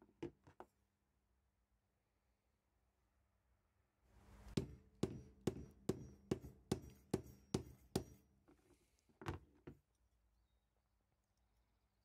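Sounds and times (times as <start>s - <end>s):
hammer knocking on wooden block: 4.6s - 8.2s.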